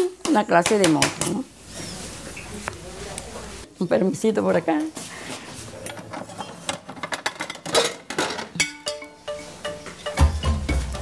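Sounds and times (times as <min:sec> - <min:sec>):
dishes and utensils clinking: 0:05.6 - 0:11.0
held musical notes: 0:08.6 - 0:11.0.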